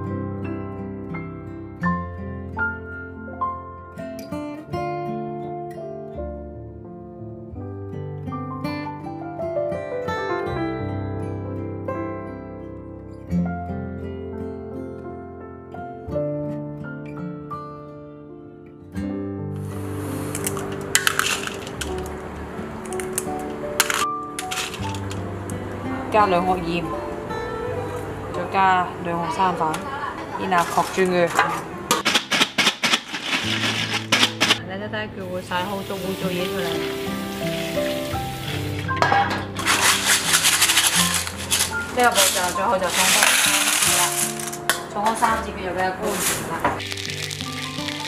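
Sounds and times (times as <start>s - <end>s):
background music: 0.0s - 48.0s
snail shells scraping in metal colander: 20.2s - 25.3s, 30.4s - 34.6s, 35.8s - 38.8s, 39.4s - 44.8s, 46.0s - 48.0s.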